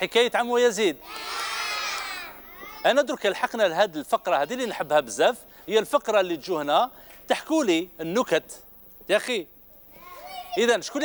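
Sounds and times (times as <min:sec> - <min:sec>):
children shouting together: 0:01.0 - 0:02.9, 0:10.0 - 0:10.6.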